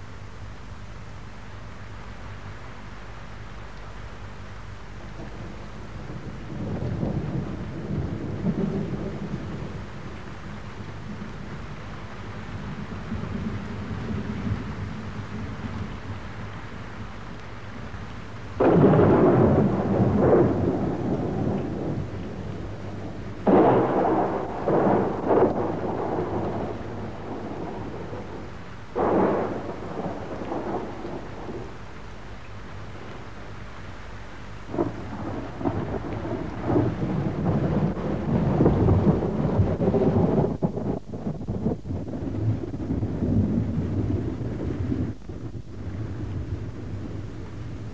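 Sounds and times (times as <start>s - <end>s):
thunder claps: 5.1s - 9.9s, 18.6s - 31.9s, 34.7s - 47.9s.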